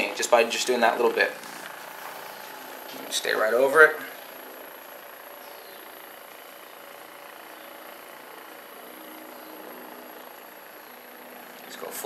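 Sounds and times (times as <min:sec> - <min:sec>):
massage gun motor hum: 0:00.0 - 0:12.0.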